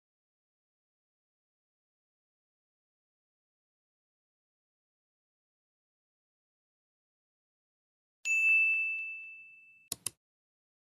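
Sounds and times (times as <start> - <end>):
bright bell-like ding: 8.3 - 9.9
sharp clicks: 9.9 - 10.2.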